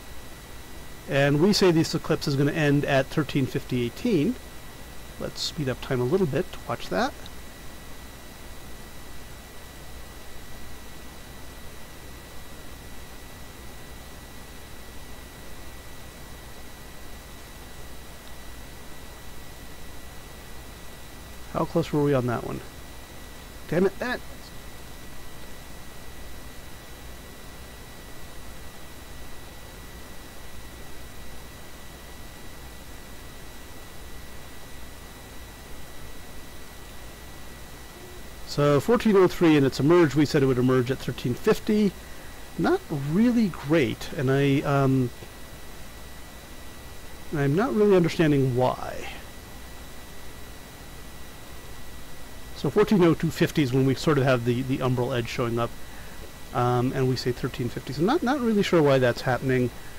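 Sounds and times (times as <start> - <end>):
faint high whine: 0.0 - 59.9
microphone hiss: 0.0 - 59.9.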